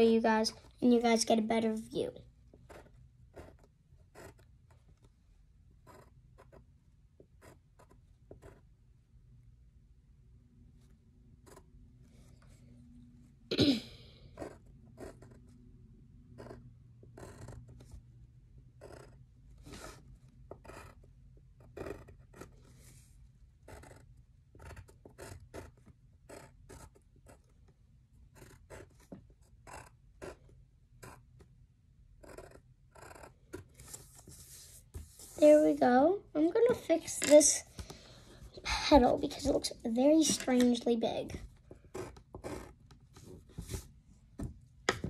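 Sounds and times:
pencil scratching on paper: 0:02.6 - 0:04.8, 0:05.8 - 0:08.7, 0:11.4 - 0:12.6, 0:14.3 - 0:15.6, 0:16.3 - 0:18.0, 0:18.8 - 0:31.5, 0:32.2 - 0:35.8, 0:38.9 - 0:43.9.

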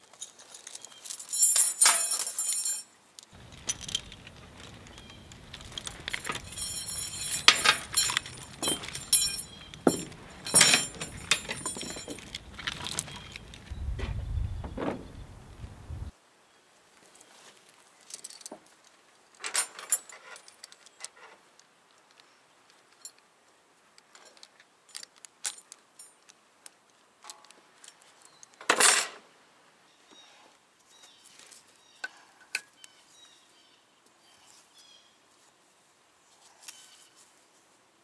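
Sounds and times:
steel chain clinking and rattling: 0:00.0 - 0:13.7, 0:19.4 - 0:21.2
low rumble: 0:13.6 - 0:16.1.

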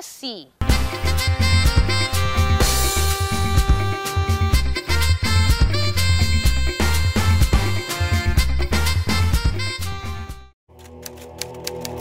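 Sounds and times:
music track: 0:00.6 - 0:12.0.

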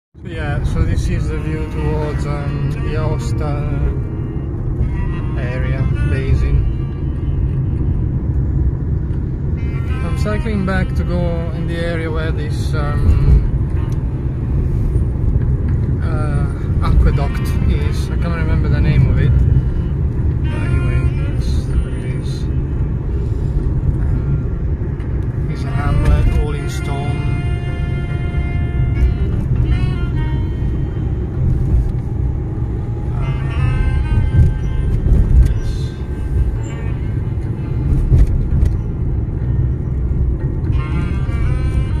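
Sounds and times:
car engine and road noise: 0:00.1 - 0:42.0
music: 0:25.5 - 0:31.7, 0:32.9 - 0:42.0.

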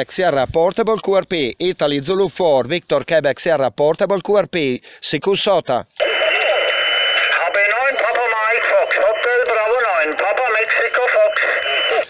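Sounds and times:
radio voices over a speaker: 0:06.0 - 0:12.0.

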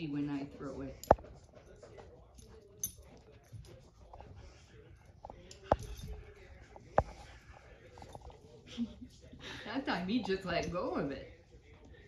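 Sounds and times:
dog playing: 0:00.0 - 0:12.0.

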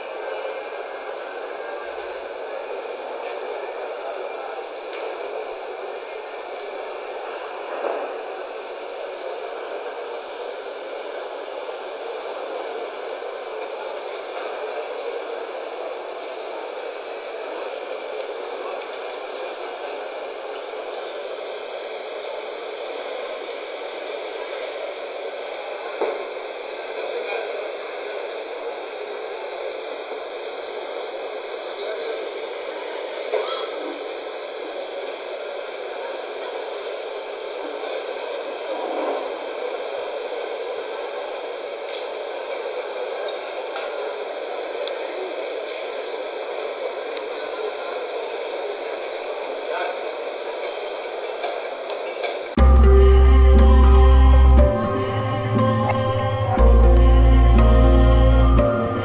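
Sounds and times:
muffled hall ambience: 0:00.0 - 0:59.0.

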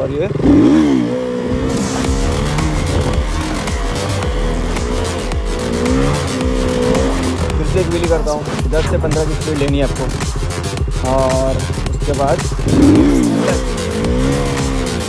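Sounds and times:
motorcycle engine revving: 0:00.0 - 0:15.0
music with a beat: 0:01.6 - 0:15.0.

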